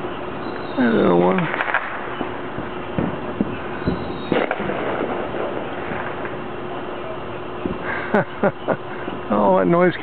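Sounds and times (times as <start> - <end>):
distant fireworks popping: 0.0 - 9.4
firework bang: 1.3 - 6.5, 7.6 - 7.9.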